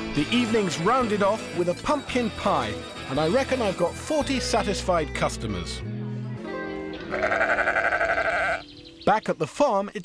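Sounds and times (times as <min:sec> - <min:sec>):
sheep bleating: 0:07.1 - 0:08.7.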